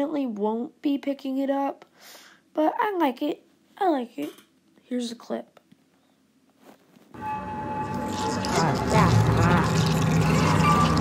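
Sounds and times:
low drone: 7.2 - 11.0
thin high tone: 7.2 - 11.0.

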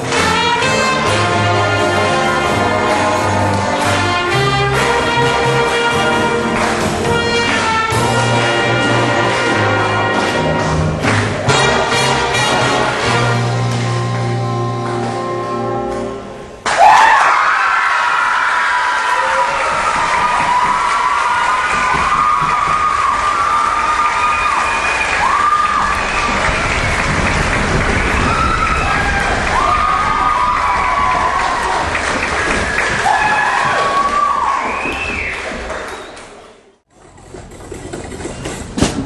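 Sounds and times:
audience applauding: 2.5 - 12.1, 16.6 - 36.7
crowd cheering and whooping: 16.6 - 36.2.

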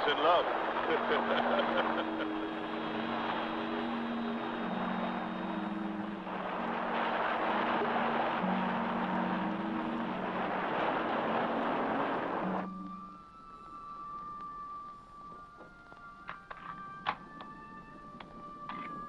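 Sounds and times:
hover car rushing noise: 0.0 - 13.0
low held orchestral notes: 0.0 - 19.0.

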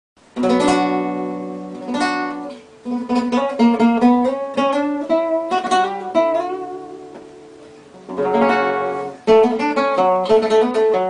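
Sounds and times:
classical guitar fingerpicked: 0.3 - 11.0.

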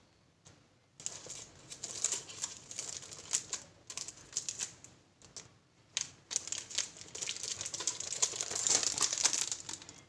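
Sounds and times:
shrink-wrap crackling under fingers: 1.0 - 10.0.

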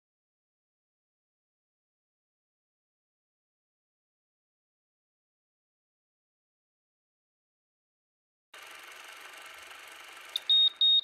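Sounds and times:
short high electronic beeps: 10.4 - 11.0.

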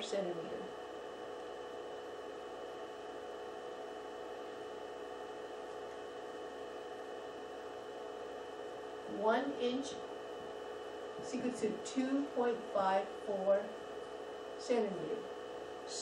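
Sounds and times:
faint hum tones: 0.0 - 16.0.

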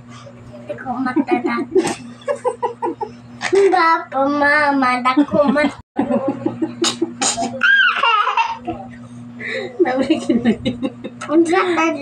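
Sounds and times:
high-pitched squealing laugh: 6.8 - 8.7.

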